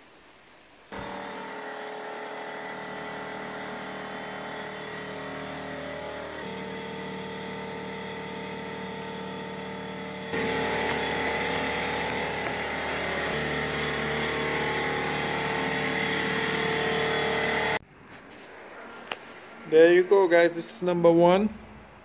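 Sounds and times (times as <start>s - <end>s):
motor humming: 0.9s - 17.8s.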